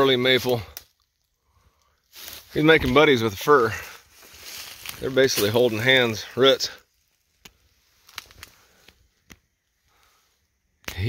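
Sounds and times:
footsteps snapping dry twigs: 0.4 - 3.0, 3.8 - 6.1, 6.7 - 10.1.

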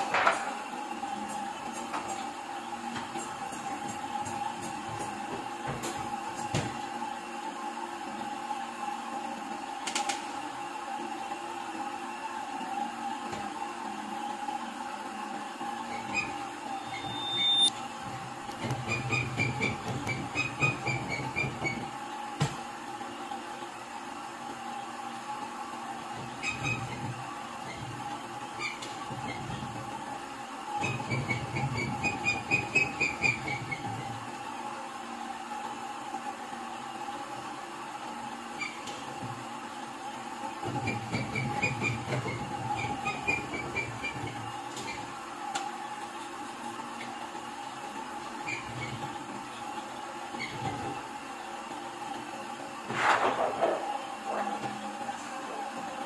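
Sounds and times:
printing press humming: 0.0 - 8.6, 12.2 - 34.8, 36.8 - 56.0
rapid even clatter: 52.9 - 54.6.

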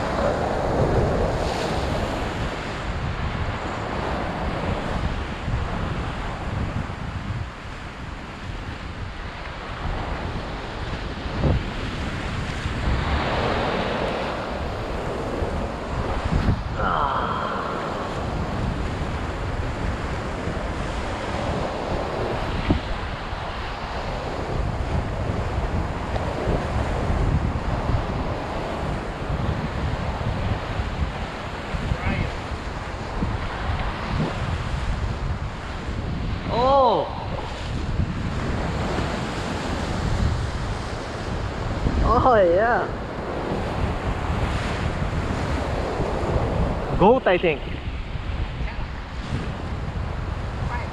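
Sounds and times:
wind buffeting microphone: 0.0 - 50.9
surf breaking on rocks: 9.1 - 47.6
short voice sound: 16.8 - 18.0.

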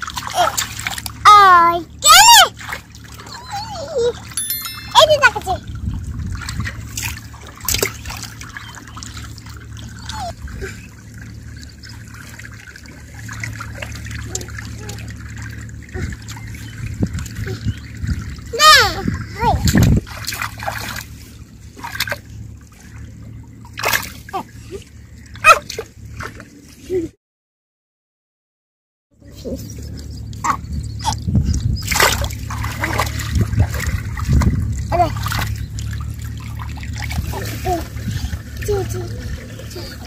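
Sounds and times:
water splashing around feet: 0.0 - 1.2, 2.5 - 26.8, 29.9 - 40.0
child calling out: 1.3 - 2.6, 18.5 - 19.6
hands splashing in muddy water: 31.8 - 38.1.

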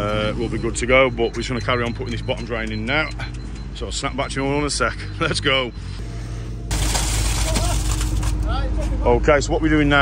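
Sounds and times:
diesel dumper engine rumble: 0.0 - 10.0.

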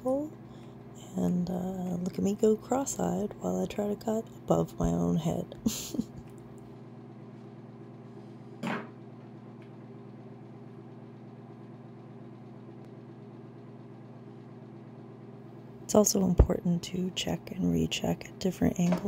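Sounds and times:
low electrical hum: 0.0 - 19.0.

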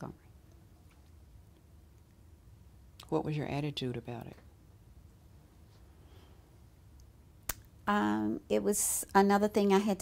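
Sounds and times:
woman speaking: 3.0 - 4.5, 7.8 - 10.0.

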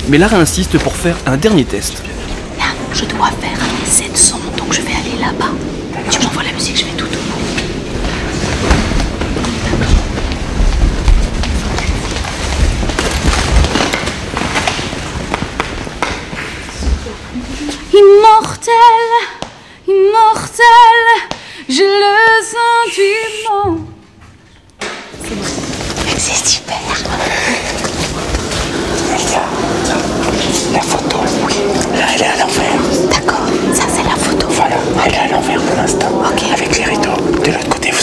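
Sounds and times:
low background rumble: 0.0 - 19.1, 25.1 - 38.0
woman singing with vibrato: 17.1 - 24.2.

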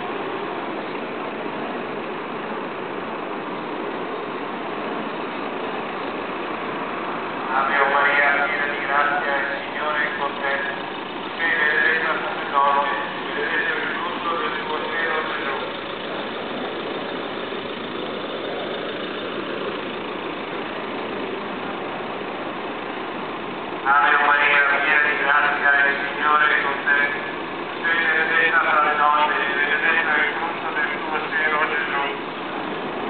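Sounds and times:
cars driving past: 0.0 - 33.0.

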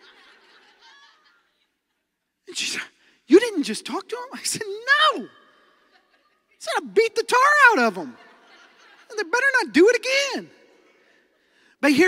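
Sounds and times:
faint audience laughter: 0.0 - 2.2, 8.2 - 9.3.

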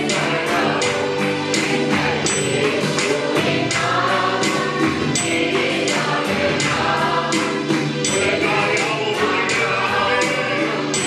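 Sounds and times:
amplified accompaniment: 0.0 - 11.0
men singing worship song: 0.0 - 11.0
steady percussive beat: 0.0 - 11.0.

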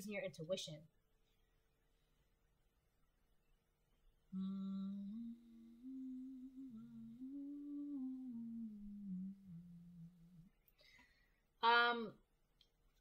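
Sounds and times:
woman humming: 4.3 - 10.6.

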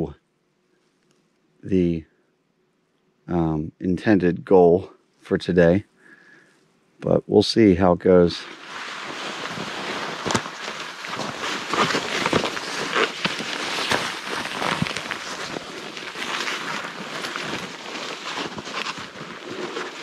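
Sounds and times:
branches rustling: 8.2 - 20.0
snowshoes crunching through snow: 8.4 - 20.0.

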